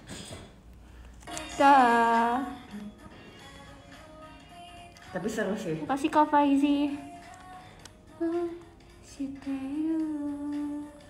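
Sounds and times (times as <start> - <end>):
woman humming: 2.4 - 3.1, 8.1 - 11.0.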